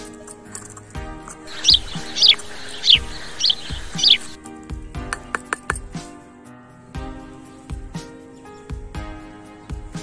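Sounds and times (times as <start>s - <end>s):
background music with steady beat: 0.0s - 10.0s
bird chirping: 1.4s - 4.4s.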